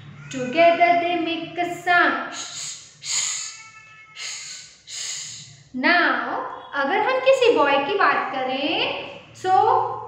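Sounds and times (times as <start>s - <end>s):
woman shushing: 2.3s - 5.5s.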